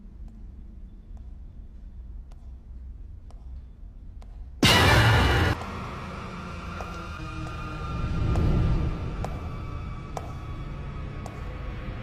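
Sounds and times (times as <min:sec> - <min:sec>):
loud noise hit: 0:04.6 - 0:07.5
low dark rumbling drone: 0:04.6 - 0:12.0.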